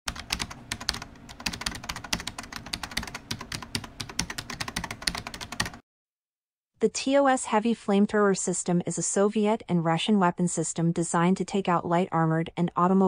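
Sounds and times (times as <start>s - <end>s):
rapid sharp clicks: 0.1s - 5.8s.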